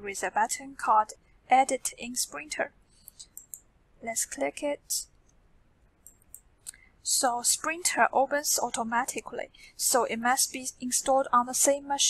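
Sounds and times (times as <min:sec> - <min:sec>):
computer mouse clicks: 0:03.0 - 0:03.7, 0:06.0 - 0:06.9.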